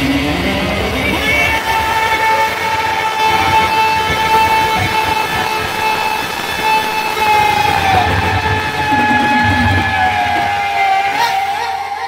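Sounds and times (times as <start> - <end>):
long held high note: 0.0 - 12.0
steady drums: 0.0 - 12.0.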